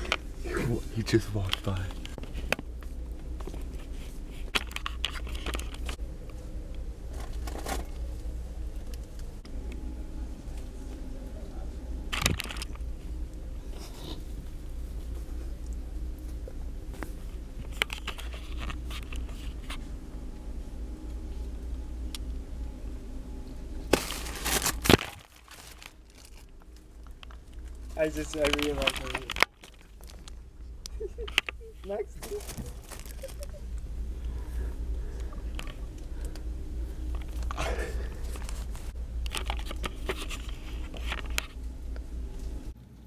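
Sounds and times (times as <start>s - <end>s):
low steady hum: 0.0s - 43.0s
low steady rumble: 0.0s - 43.0s
plastic wrapping crinkling: 23.9s - 30.4s, 31.1s - 33.6s.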